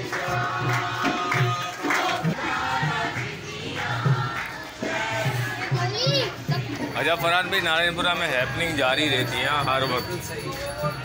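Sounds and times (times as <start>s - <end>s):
child shouting: 5.8s - 6.4s.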